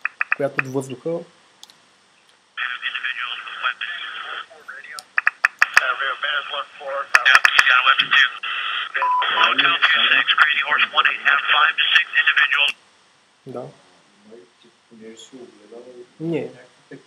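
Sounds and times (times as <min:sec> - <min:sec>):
sharp radio clicks: 0:00.0 - 0:00.8, 0:02.6 - 0:12.8
men talking over tinny radio: 0:00.4 - 0:01.3, 0:02.6 - 0:12.8, 0:13.5 - 0:17.0
short steady beep: 0:09.0 - 0:09.5.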